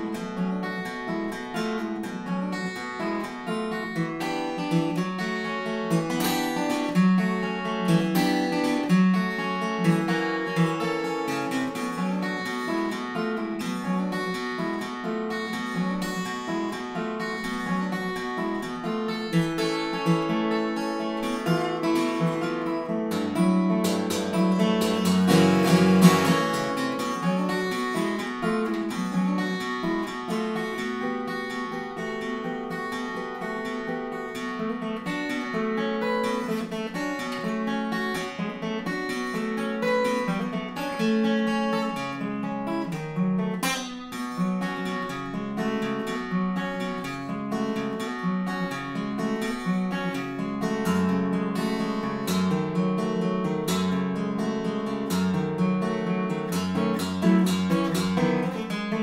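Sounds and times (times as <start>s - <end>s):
fingerstyle acoustic guitar: 0.0s - 59.0s.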